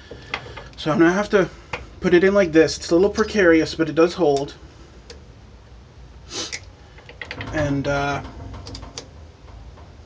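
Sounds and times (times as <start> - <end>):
person breathing: 0.0 - 0.8
low steady hum: 0.0 - 10.0.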